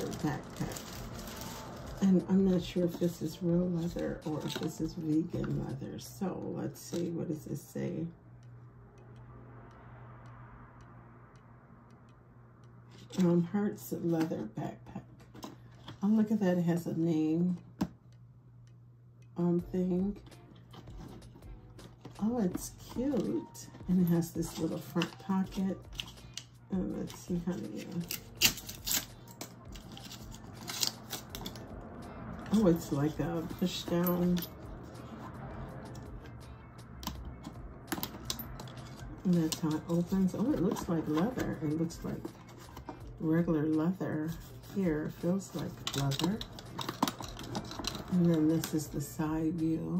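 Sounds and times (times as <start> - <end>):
low steady hum: 0.0 - 49.9.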